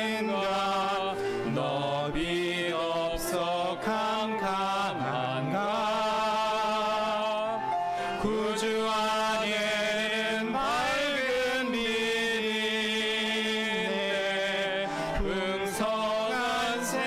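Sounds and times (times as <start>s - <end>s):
man singing a hymn: 0.0s - 17.0s.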